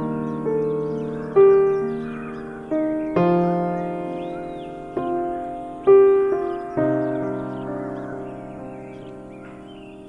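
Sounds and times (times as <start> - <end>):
soft piano music: 0.0 - 10.0.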